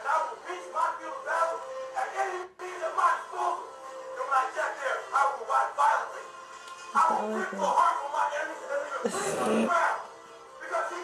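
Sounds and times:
man giving a speech: 0.0 - 6.3, 7.0 - 11.0
background music: 0.0 - 11.0.

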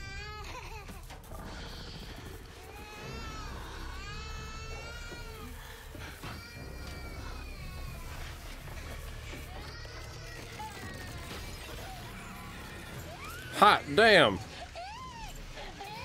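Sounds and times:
high wailing cries: 1.5 - 16.0.

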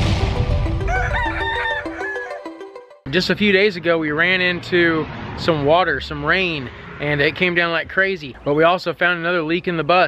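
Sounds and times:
explosion rumble: 0.0 - 1.8
rooster crowing: 0.7 - 2.6.

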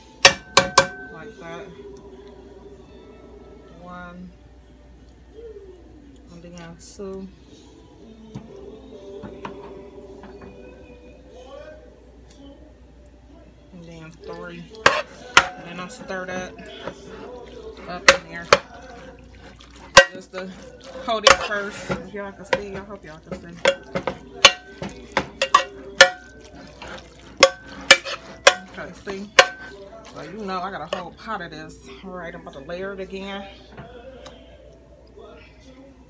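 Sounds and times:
wet stirring of noodles: 11.6 - 36.0
spoon scraping against pot: 14.6 - 31.4.

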